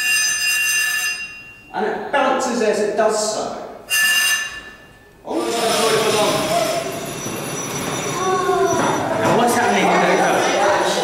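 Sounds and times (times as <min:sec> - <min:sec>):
metal squealing on dry ice: 0:00.0 - 0:01.4, 0:03.9 - 0:09.1
children chattering: 0:05.3 - 0:11.0.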